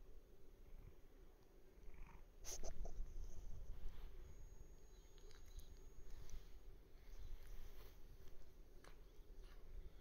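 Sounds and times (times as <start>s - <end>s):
cat purring: 1.7s - 3.1s.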